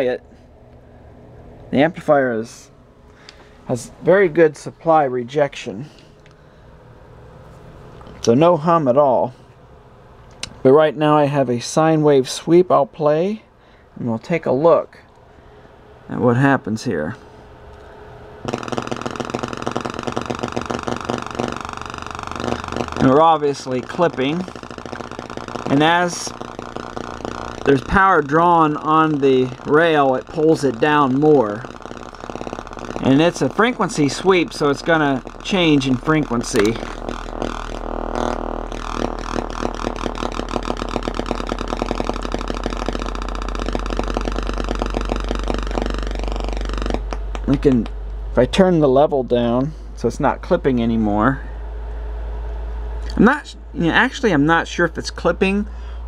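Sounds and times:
harsh buzzy sine sweep: 0.0 - 1.1, 14.4 - 56.0
steady low hum: 0.0 - 56.0.

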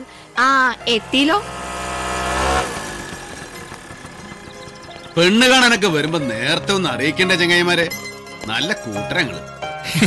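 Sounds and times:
motor scooter engine: 0.0 - 7.8.

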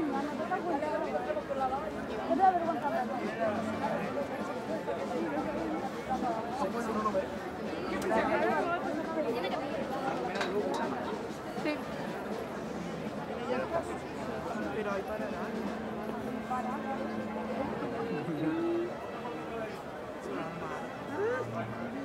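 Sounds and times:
crowd chattering: 0.0 - 22.0.

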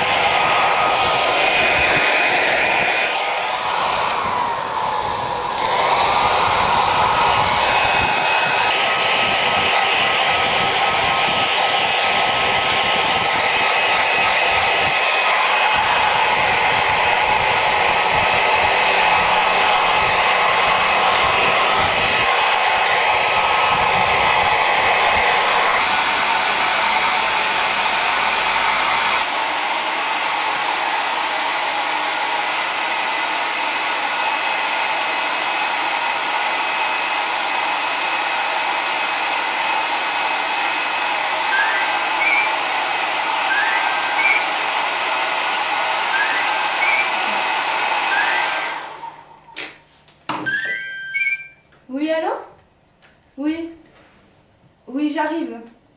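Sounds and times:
hair dryer blowing: 0.0 - 52.1
short rising chirps: 41.5 - 42.6, 43.5 - 44.5, 46.2 - 47.2, 50.5 - 51.7.

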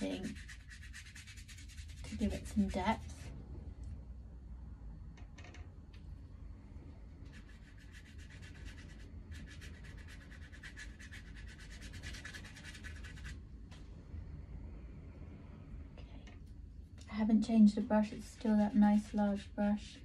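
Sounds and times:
brush scrubbing paint on paper: 0.0 - 3.3, 7.3 - 13.4, 18.1 - 19.9.

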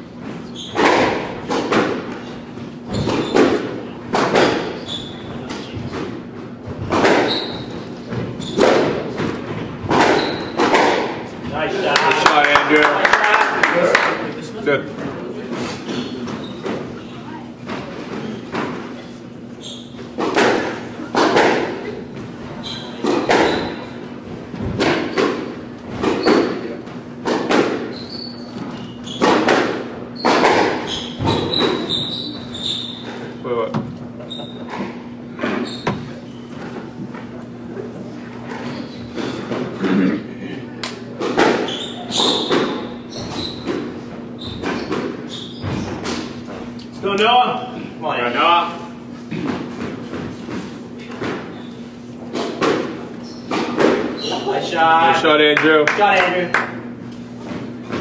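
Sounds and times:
squash ball hit by racquets: 0.2 - 11.4, 20.0 - 33.1, 41.1 - 46.6, 49.2 - 54.3.

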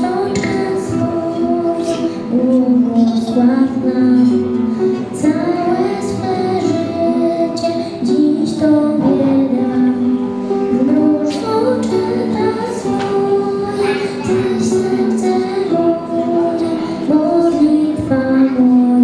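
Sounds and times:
acoustic guitar: 0.0 - 19.0
girl singing into a microphone: 0.0 - 19.0.

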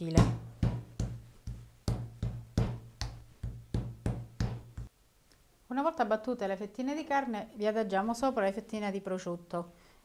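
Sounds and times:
meat mallet pounding meat: 0.1 - 4.9.

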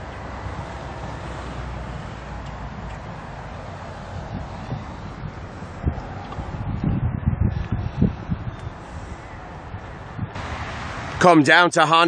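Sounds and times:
wind buffeting microphone: 0.0 - 11.4.

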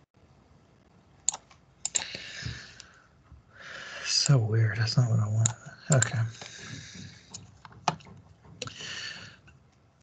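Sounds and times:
computer mouse clicks: 1.2 - 3.0, 5.4 - 9.8.

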